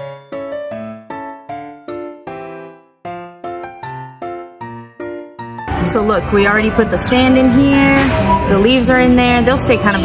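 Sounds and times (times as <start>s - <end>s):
chiming keyboard melody: 0.0s - 10.0s
woman's voice: 5.8s - 10.0s.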